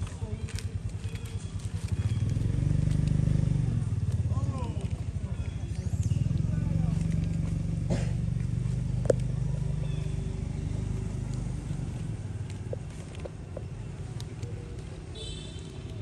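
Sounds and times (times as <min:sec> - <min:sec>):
vehicle engine running: 0:00.0 - 0:16.0.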